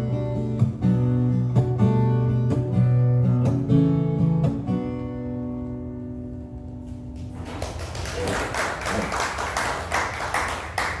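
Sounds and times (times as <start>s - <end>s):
loud claps close by: 7.2s - 11.0s
audience applause: 7.3s - 11.0s.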